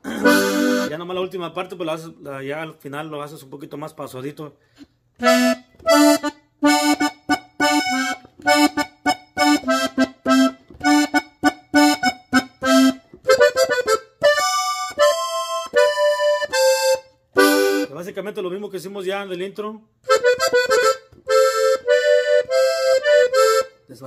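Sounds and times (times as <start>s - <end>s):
button accordion melody: 0.0s - 1.2s, 5.2s - 18.1s, 20.0s - 23.9s.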